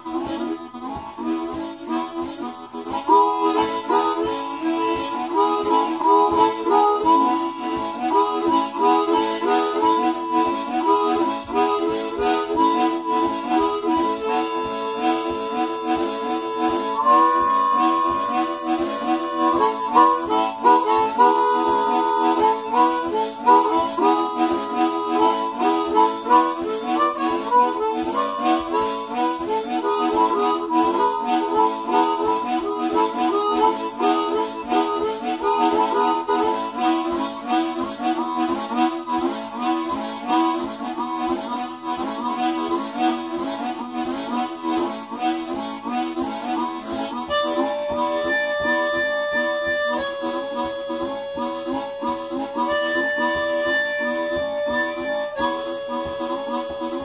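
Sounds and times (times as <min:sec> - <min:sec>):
two harmonicas playing: 0:00.0 - 0:57.0.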